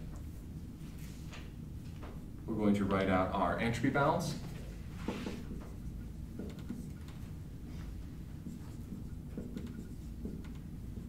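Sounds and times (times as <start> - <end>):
low room hum: 0.0 - 11.0
marker writing on whiteboard: 4.9 - 11.0.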